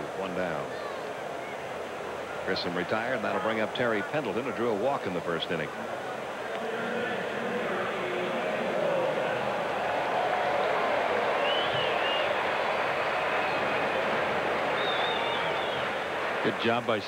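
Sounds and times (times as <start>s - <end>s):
murmur of crowd: 0.0s - 17.0s
faint high call or whistle: 11.4s - 12.4s, 14.8s - 15.9s.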